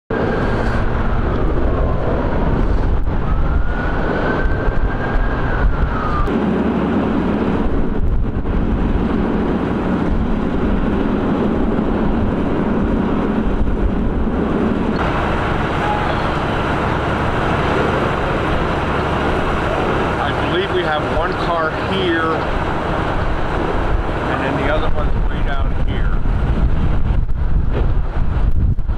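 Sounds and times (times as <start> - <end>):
emergency vehicles idling: 0.1 - 27.2
road noise: 0.1 - 28.9
siren wailing: 0.2 - 7.6, 15.0 - 23.8.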